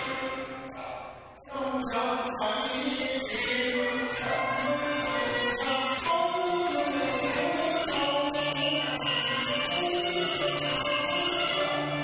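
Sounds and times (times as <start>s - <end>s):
opera singing with held notes: 1.4s - 12.0s.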